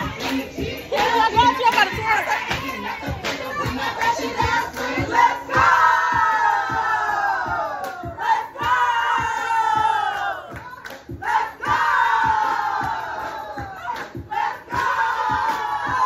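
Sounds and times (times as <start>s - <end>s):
music with steady beat: 0.0s - 16.0s
women shouting together: 5.5s - 13.0s.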